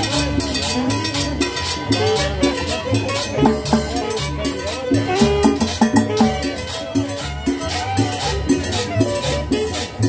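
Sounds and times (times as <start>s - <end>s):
bass line: 0.0s - 10.0s
cowbell beat: 0.0s - 10.0s
melody: 0.0s - 10.0s.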